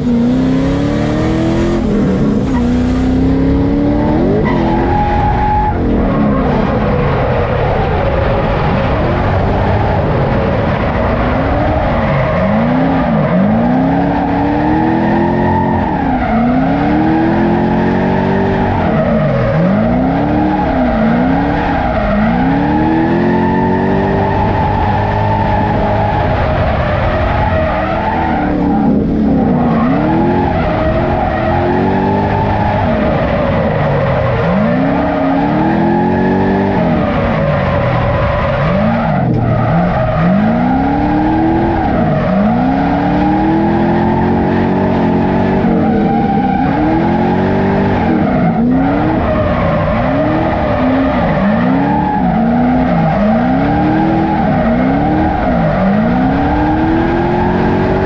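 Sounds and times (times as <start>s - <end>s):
car engine revving: 0.0s - 58.0s
tires squealing: 0.0s - 58.0s.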